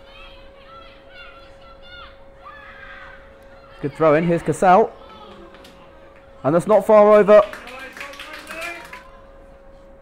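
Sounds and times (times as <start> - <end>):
distant voices shouting: 0.0 - 9.4.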